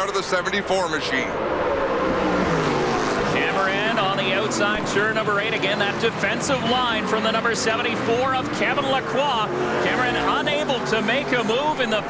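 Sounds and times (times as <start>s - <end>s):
racing car engines: 0.0s - 12.0s
commentator talking: 3.3s - 12.0s.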